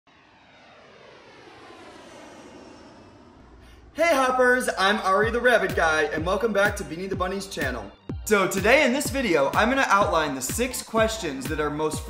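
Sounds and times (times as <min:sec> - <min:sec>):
jet engine whining hum: 0:00.1 - 0:12.0.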